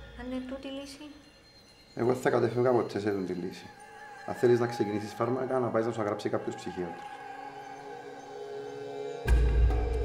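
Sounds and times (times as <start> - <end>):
soft sustained chord music: 0.0 - 10.0.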